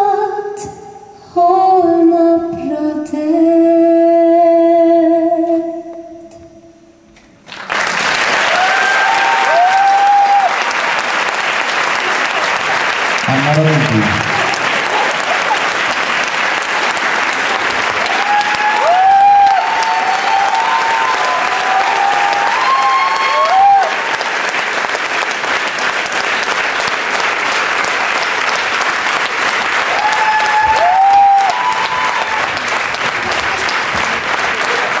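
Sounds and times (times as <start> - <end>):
audience applauding: 7.4 - 35.0
voices whooping: 8.5 - 10.6, 18.1 - 24.0, 29.9 - 32.5.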